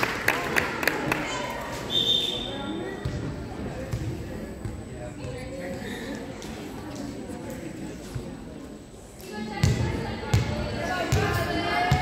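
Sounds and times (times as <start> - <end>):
chatter of people: 0.0 - 12.0.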